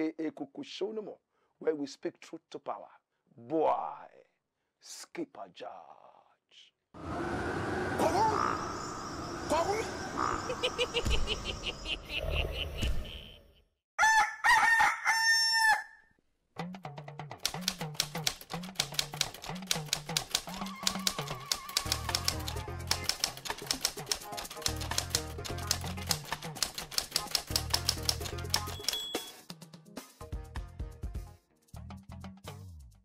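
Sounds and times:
rooster crowing: 14.0s - 16.2s
rapid typewriter-like clicks: 17.4s - 29.3s.

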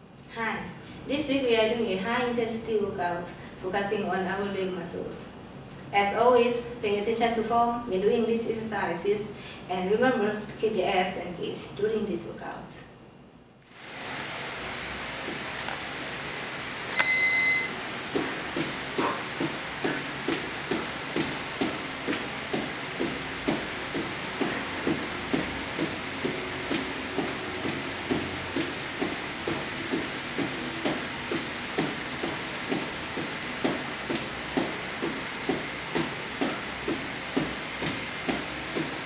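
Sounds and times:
steady hiss: 13.6s - 39.0s
shoes tapping tile floor: 15.2s - 16.0s, 17.0s - 39.0s
loud electronic beep: 16.9s - 17.8s.

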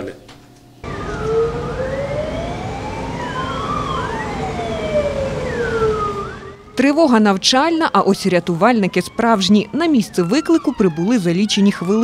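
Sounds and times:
low rumble of truck: 0.8s - 6.8s
fire engine siren wailing: 0.8s - 12.0s.

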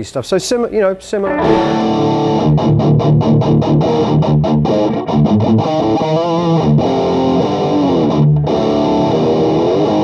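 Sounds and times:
electric guitar riff: 1.2s - 10.0s.

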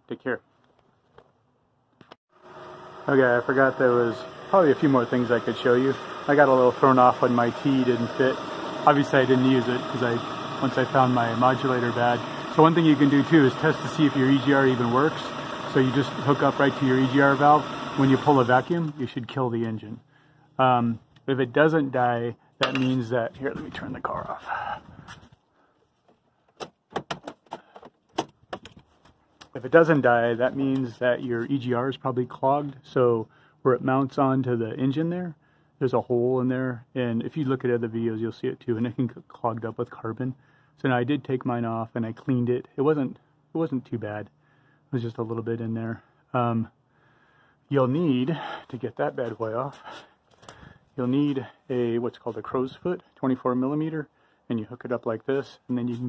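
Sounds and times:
car engine idling: 2.4s - 19.0s.

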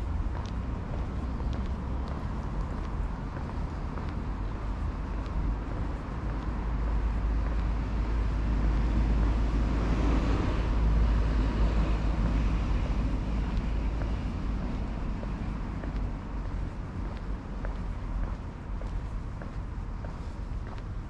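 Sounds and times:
wind rumbling on microphone: 0.0s - 21.0s.

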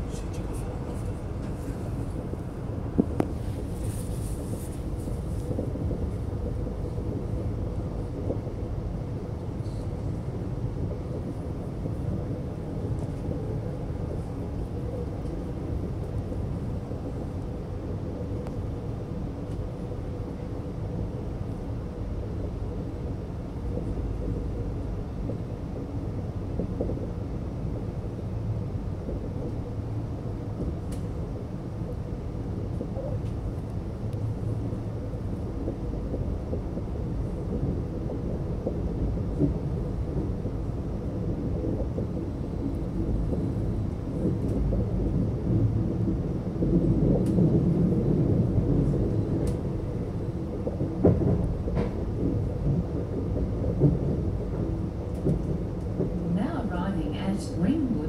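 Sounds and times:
train rumble and hum: 0.0s - 58.0s.

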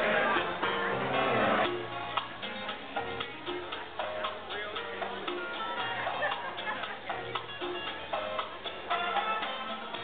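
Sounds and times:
steady ticking beat: 1.6s - 10.0s.

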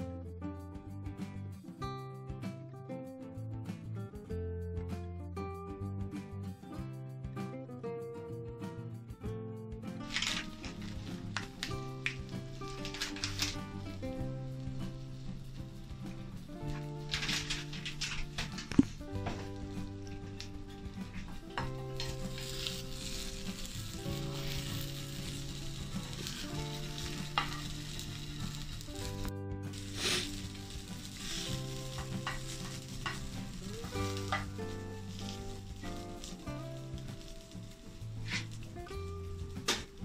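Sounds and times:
soft background music: 0.0s - 40.0s
omelette sizzling in a pan: 10.1s - 40.0s
spatula scraping a pan: 21.1s - 24.9s, 29.8s - 34.5s, 38.2s - 38.6s.

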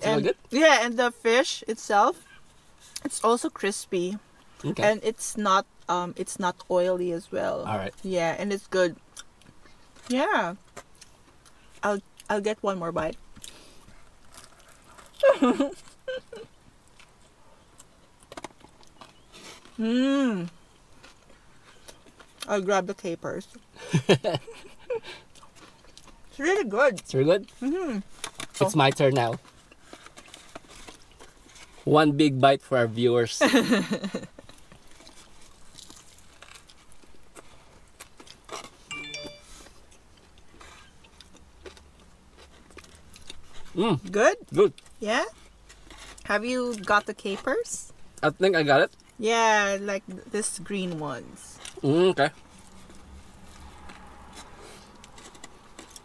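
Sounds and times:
chewing crispy food: 13.3s - 22.6s, 23.4s - 31.9s, 33.8s - 38.9s, 39.7s - 47.4s, 51.6s - 56.0s
brief pitched sound: 38.9s - 39.7s.

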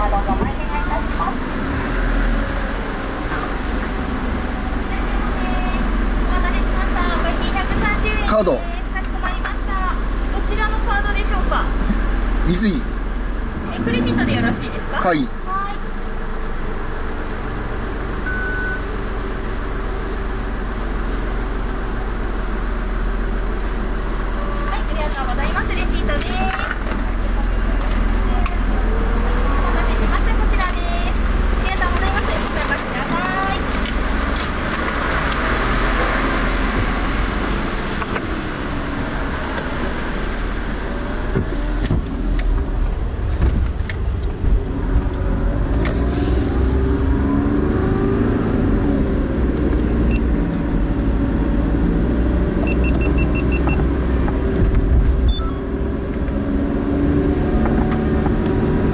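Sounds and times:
car engine: 0.0s - 58.9s
tyre noise on wet road: 0.0s - 58.9s.

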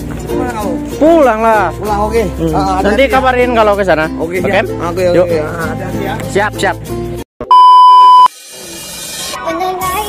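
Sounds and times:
electronic beep tone: 7.4s - 8.3s.

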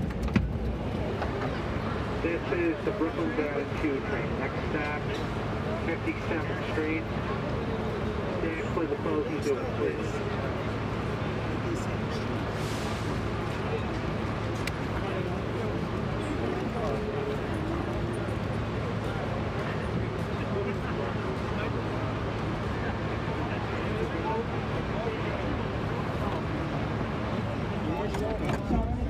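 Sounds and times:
faint voices: 0.0s - 29.0s
subway car humming: 0.0s - 29.0s.

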